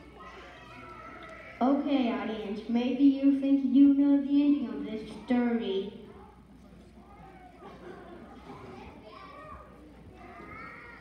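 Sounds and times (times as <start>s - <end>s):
faint murmur: 0.0s - 11.0s.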